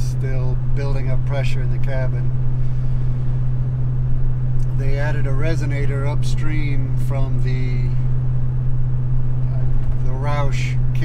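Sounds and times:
man talking: 0:00.0 - 0:02.3, 0:04.6 - 0:08.1, 0:09.5 - 0:11.0
low exhaust drone: 0:00.0 - 0:11.0
road noise: 0:00.0 - 0:11.0.

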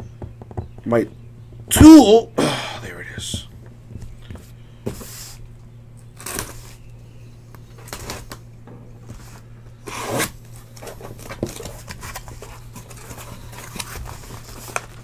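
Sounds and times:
packing tape being cut and torn: 0:06.2 - 0:06.8, 0:07.8 - 0:08.4, 0:09.9 - 0:15.0.

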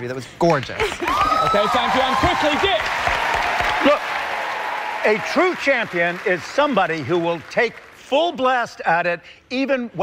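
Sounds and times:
audience applauding: 0:01.0 - 0:08.0.

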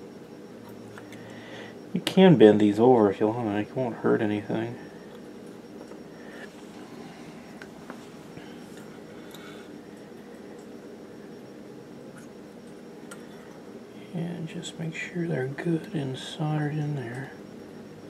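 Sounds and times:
room tone hum: 0:00.0 - 0:18.0.

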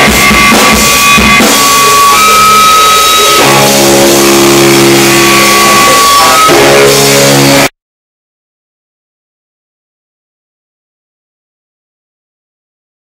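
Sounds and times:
electric guitar chords ringing: 0:00.0 - 0:07.7
rock band playing: 0:00.0 - 0:07.7.

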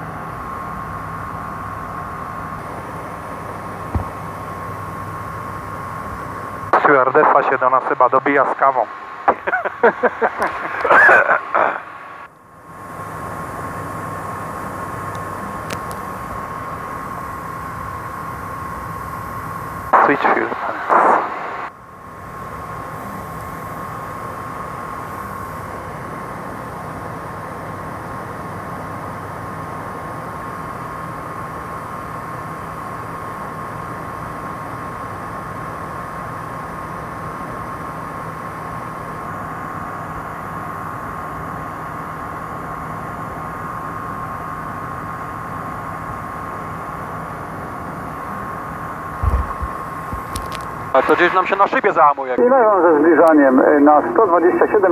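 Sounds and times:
light aircraft engine and airflow: 0:00.0 - 0:54.9
low thump: 0:03.9 - 0:04.2.

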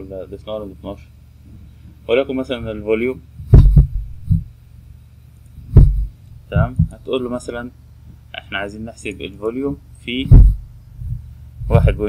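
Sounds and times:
faint steady hum: 0:00.0 - 0:12.0
dull low thumps: 0:03.4 - 0:04.6, 0:05.6 - 0:07.1, 0:10.2 - 0:12.0.

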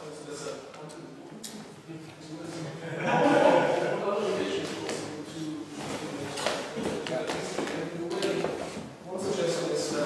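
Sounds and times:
people talking in a hall: 0:00.0 - 0:10.0.

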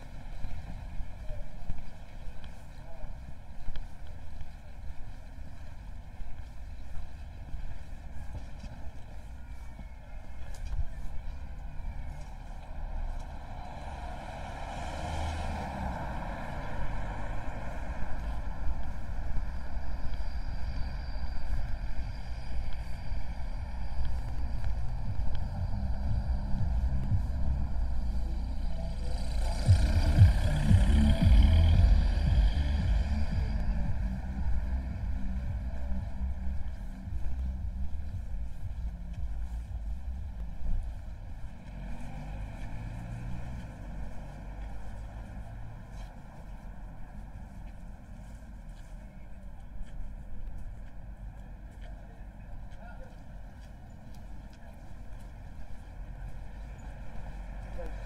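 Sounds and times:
low rumble of traffic: 0:00.0 - 0:58.0
car driving past: 0:12.2 - 0:48.0.

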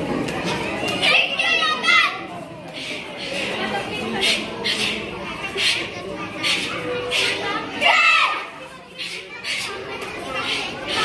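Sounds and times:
crowd murmur in a hall: 0:00.0 - 0:11.0
child shouting: 0:01.0 - 0:02.2, 0:07.2 - 0:09.6.

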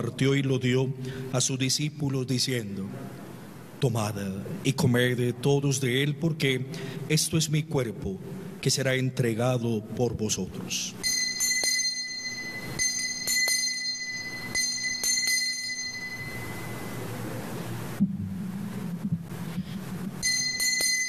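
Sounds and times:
altar bells ringing: 0:11.0 - 0:17.2, 0:20.2 - 0:21.0.

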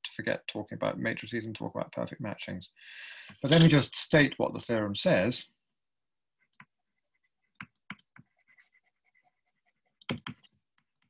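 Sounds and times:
stylus tapping and scratching on screen: 0:06.3 - 0:11.0.

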